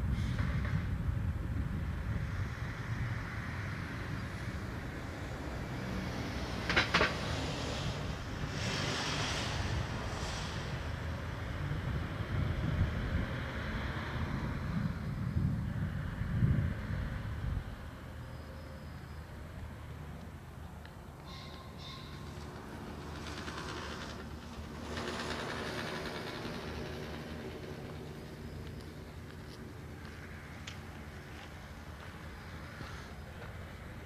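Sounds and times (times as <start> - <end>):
wind buffeting microphone: 0.0 - 5.4, 7.6 - 18.0.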